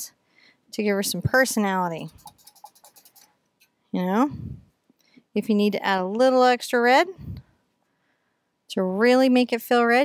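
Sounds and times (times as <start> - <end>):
paintbrush scratching on canvas: 1.8 - 3.3.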